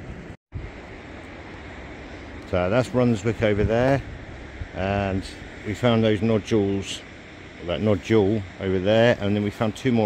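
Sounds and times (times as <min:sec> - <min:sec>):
sea surf on rocky shore: 0:00.0 - 0:10.0
wind: 0:00.0 - 0:10.0.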